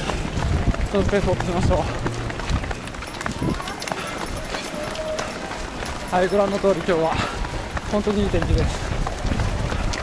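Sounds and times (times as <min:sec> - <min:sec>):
faint voices: 0:00.0 - 0:10.0
runners' footsteps on asphalt: 0:00.0 - 0:10.0.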